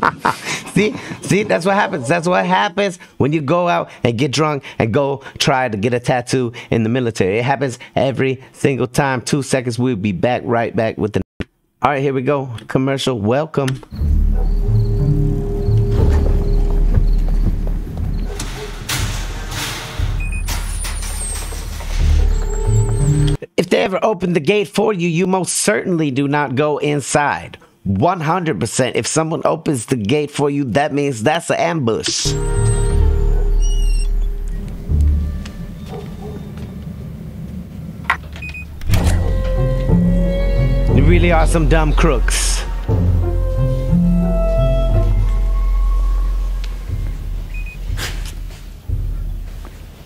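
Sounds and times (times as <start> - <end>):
low bass notes: 13.9 - 18.2, 32.3 - 36.7, 38.7 - 50.0
tense background music: 13.9 - 23.4, 32.3 - 50.0
short high electronic beep: 32.3 - 34.4
steady buzzing tone: 32.3 - 35.7
steady held tone: 32.3 - 35.8, 38.8 - 48.0.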